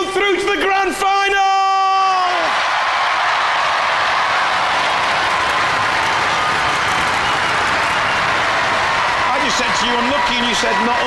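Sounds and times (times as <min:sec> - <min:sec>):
audience applauding: 0:02.4 - 0:11.0.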